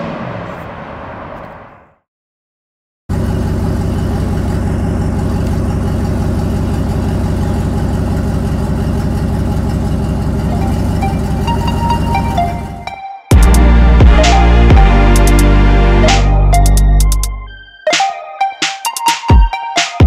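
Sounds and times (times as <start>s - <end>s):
pickup truck engine idling: 3.1s - 12.8s.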